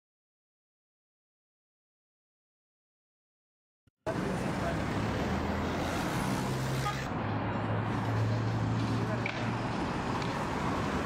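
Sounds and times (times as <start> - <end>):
traffic noise: 4.0 - 11.0
people's voices: 7.9 - 10.4.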